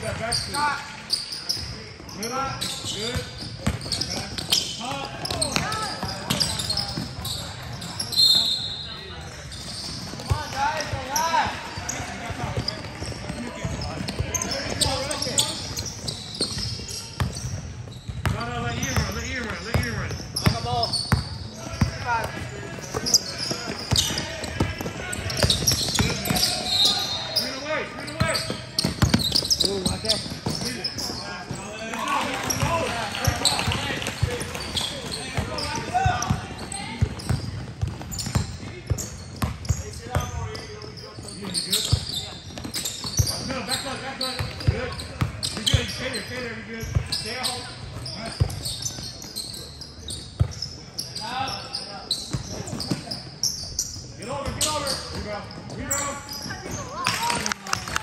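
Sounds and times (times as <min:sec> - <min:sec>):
basketball bouncing on court: 0:02.8 - 0:07.2, 0:09.8 - 0:26.6, 0:28.2 - 0:31.7, 0:32.4 - 0:40.5, 0:50.3 - 0:50.6.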